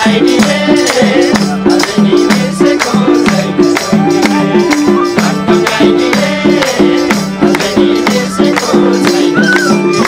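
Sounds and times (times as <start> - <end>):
folk music melody: 0.0 - 10.0
sharp percussion strikes: 0.0 - 10.0
hands clapping: 0.8 - 5.3, 7.4 - 10.0.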